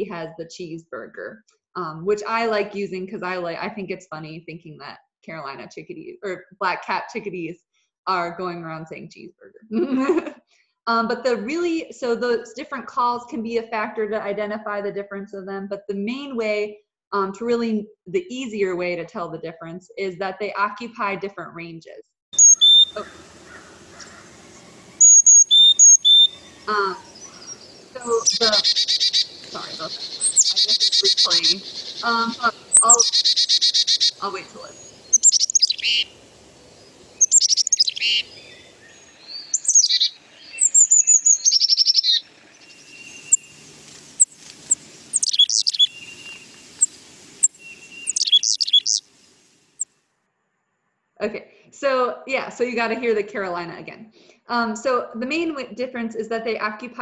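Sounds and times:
bird song whistled notes: 22.4s - 36.2s, 36.8s - 49.0s.

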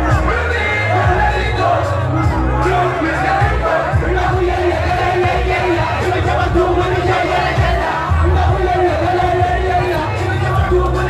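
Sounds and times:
crowd yelling: 0.0s - 11.0s
rapping over a bass-heavy beat: 0.0s - 11.0s.

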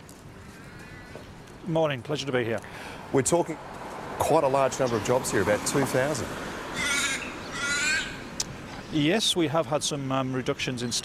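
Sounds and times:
crow cawing: 0.4s - 1.3s, 6.7s - 8.4s.

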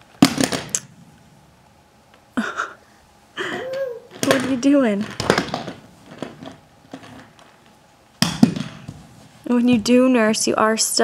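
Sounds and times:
plastic toy truck knocks and rustles: 4.2s - 7.5s, 8.2s - 9.0s.

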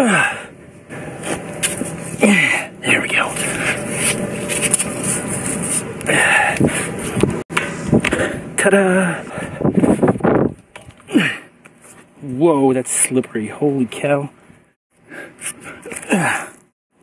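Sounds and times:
man grunting with effort: 0.0s - 0.5s, 2.2s - 3.0s, 11.1s - 11.5s, 15.8s - 16.6s
rushing and rubbing microphone noise: 9.4s - 10.7s.

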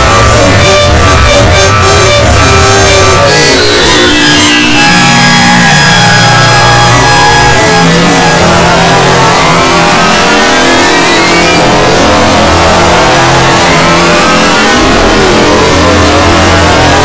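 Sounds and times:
distorted pitch-warped music: 0.0s - 17.0s.

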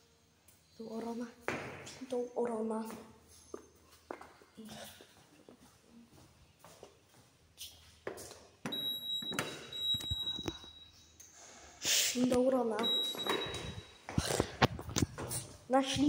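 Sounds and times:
soft footsteps: 0.9s - 10.4s
lift beep: 8.7s - 11.1s, 12.8s - 14.0s.

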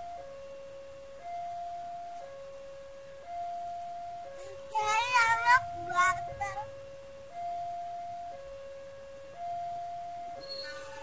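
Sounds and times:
level-crossing two-tone alarm: 0.0s - 11.0s.

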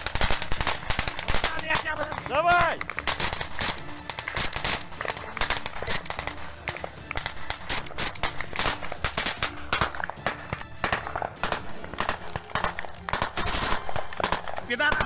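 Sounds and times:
automatic rifle fire: 0.0s - 15.0s.

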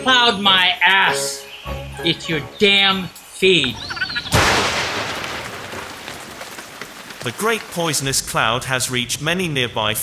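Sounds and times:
rain falling: 3.7s - 9.0s
thunderclap: 4.2s - 9.0s.

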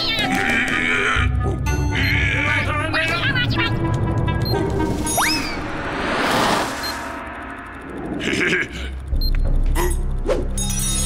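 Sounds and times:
cartoon background music: 0.0s - 7.4s.

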